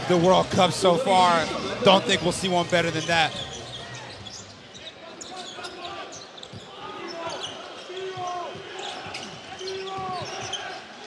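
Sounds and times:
murmur of arena crowd: 0.0s - 11.0s
sneakers squealing: 1.2s - 11.0s.

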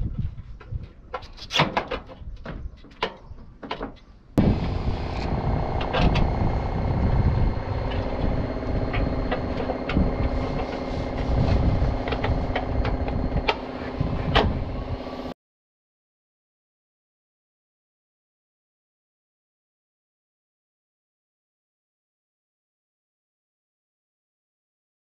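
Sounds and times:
steady engine hum: 4.4s - 15.4s.

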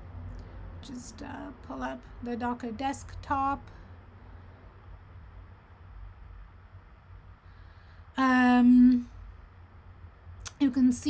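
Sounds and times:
background hiss: 0.0s - 11.0s
low hum: 0.0s - 11.0s.

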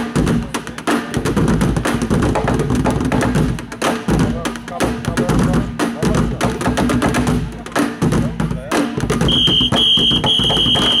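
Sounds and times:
drumsticks beating plastic barrels: 0.2s - 11.0s.

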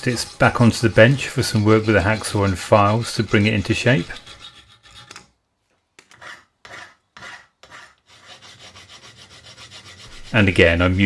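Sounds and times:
hand file rasping on steel: 0.0s - 5.3s, 6.0s - 11.0s.

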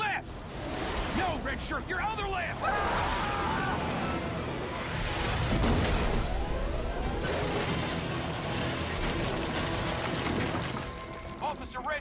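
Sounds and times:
clattering debris: 7.2s - 11.4s.

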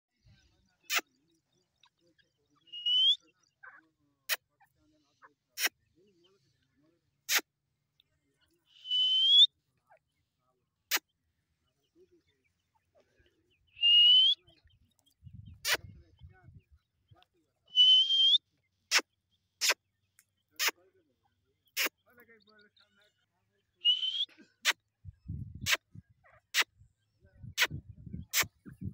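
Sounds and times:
bird whistled call rising: 2.7s - 3.2s, 8.8s - 9.5s, 13.8s - 14.4s, 17.7s - 18.4s, 23.8s - 24.3s.

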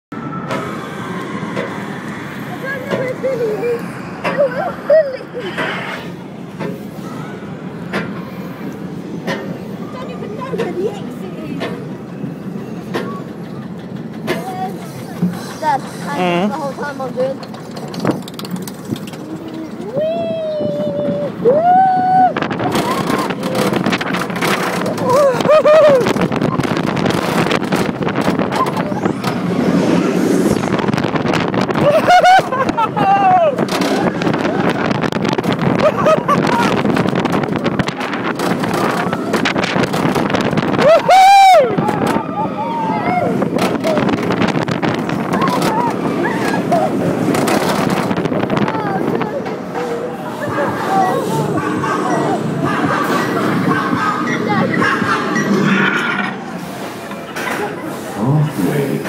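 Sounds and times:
rollercoaster track noise: 0.1s - 59.0s
wind rush on microphone: 19.8s - 55.6s.

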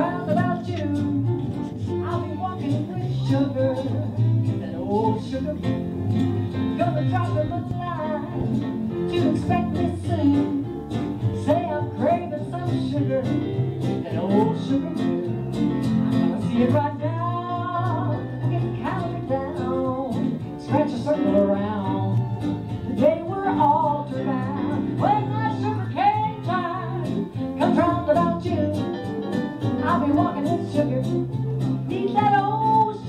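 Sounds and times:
bass: 0.0s - 33.0s
guitars: 0.0s - 33.0s
western swing band playing live: 0.0s - 33.0s.

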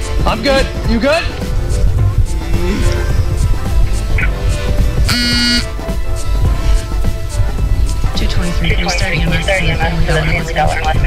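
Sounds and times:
background music: 0.0s - 11.0s
electronic buzzer tone: 5.1s - 5.8s.

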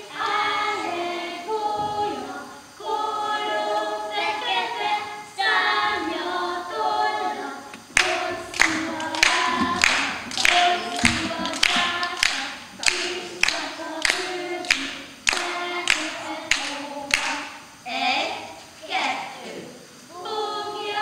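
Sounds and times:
children singing: 0.0s - 21.0s
hand claps: 8.0s - 17.6s.

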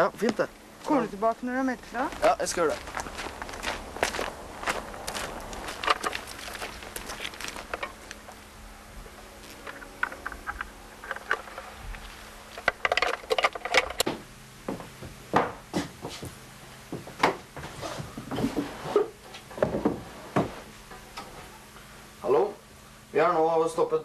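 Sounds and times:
faint steady hum: 0.0s - 24.0s.

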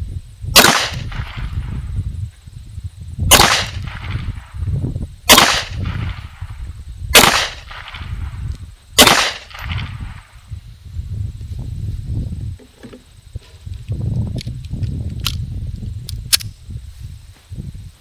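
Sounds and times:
pistol shots with echo: 0.6s - 1.6s, 3.3s - 4.3s, 5.3s - 6.4s, 7.1s - 8.1s, 9.0s - 10.2s.

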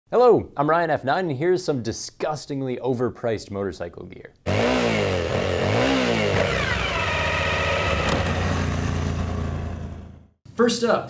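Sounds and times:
motorcycle engine revving: 4.5s - 10.4s.

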